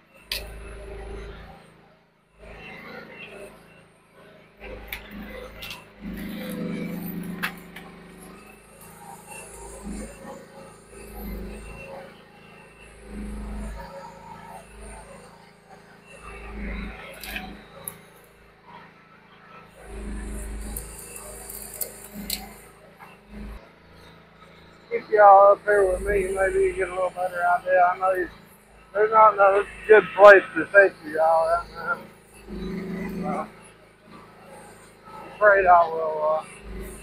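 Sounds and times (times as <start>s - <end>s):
mini excavator engine surging: 0.0s - 37.0s.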